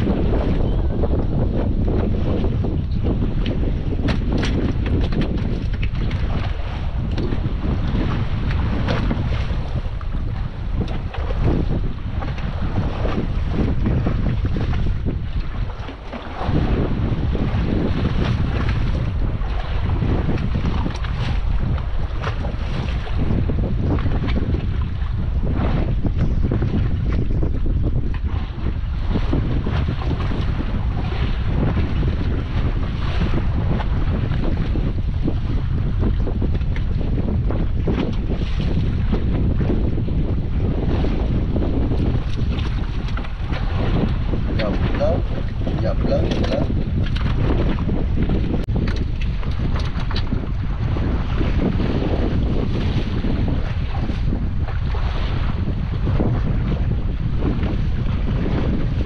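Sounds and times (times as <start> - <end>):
waves splashing against boat: 0.0 - 59.0
wind buffeting microphone: 0.0 - 59.0.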